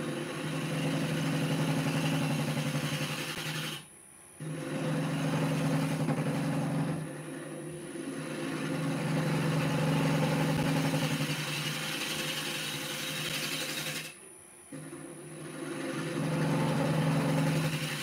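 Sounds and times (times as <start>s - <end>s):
lathe motor hum: 0.0s - 3.8s, 4.4s - 14.2s, 14.8s - 18.0s.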